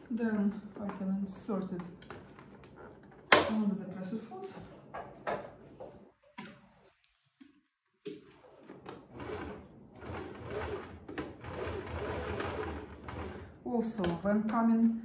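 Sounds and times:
sewing machine stitching: 8.4 - 14.2.

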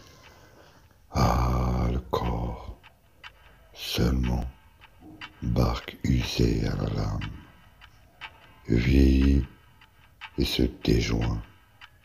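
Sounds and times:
deep male voice speaking: 1.1 - 2.8, 3.8 - 4.5, 5.4 - 7.5, 8.7 - 9.6, 10.4 - 11.5.

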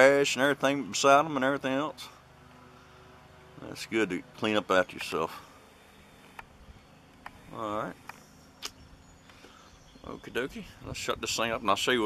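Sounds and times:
sharp click: 8.0 - 8.8.

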